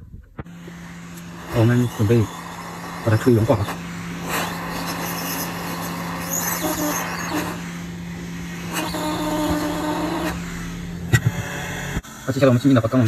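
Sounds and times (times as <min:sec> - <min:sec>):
hot air gun blowing: 0:00.4 - 0:12.2.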